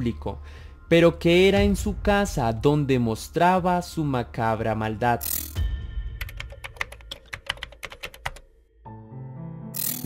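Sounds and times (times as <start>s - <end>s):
faint background music: 0.0s - 8.5s, 9.7s - 10.0s.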